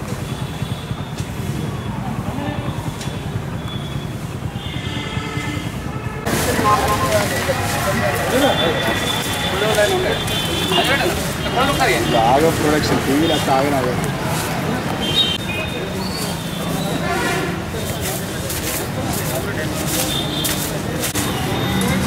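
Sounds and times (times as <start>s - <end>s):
people's voices: 1.2s - 4.8s, 5.4s - 22.0s.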